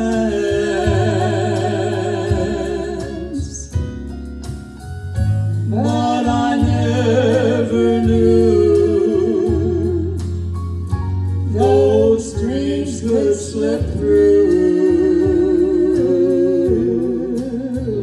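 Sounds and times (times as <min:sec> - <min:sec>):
man and woman singing duet: 0:00.0 - 0:03.9, 0:05.6 - 0:10.5, 0:11.4 - 0:18.0
instrumental accompaniment: 0:00.0 - 0:18.0.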